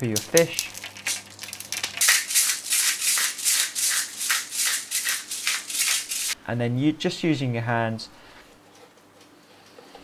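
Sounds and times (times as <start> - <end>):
pepper mill grinding: 0.0 - 6.4.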